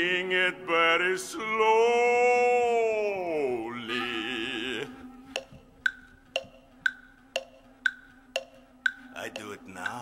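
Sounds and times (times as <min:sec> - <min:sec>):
wood block strikes: 0:05.3 - 0:10.0.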